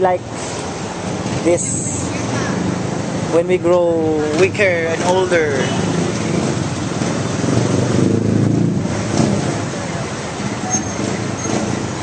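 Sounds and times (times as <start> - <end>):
moving vehicle rumble: 0.0 - 12.0.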